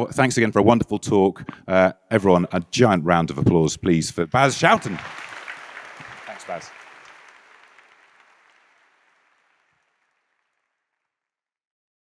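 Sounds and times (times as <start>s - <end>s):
audience applause: 4.3s - 10.9s.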